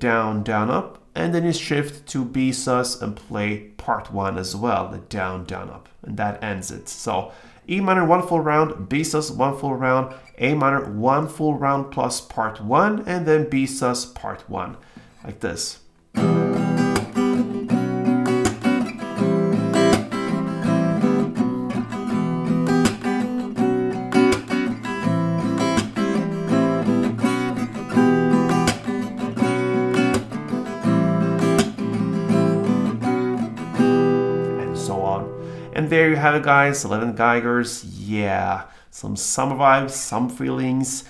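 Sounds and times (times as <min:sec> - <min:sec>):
acoustic guitar strumming: 0:15.9 - 0:37.0
percussive clap on guitar strings: 0:16.9 - 0:17.2, 0:18.4 - 0:18.9, 0:31.5 - 0:31.9.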